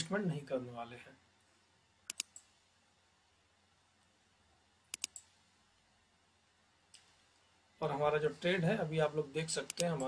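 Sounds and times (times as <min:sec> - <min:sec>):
computer mouse button clicks: 0:02.1 - 0:02.5, 0:04.9 - 0:05.3.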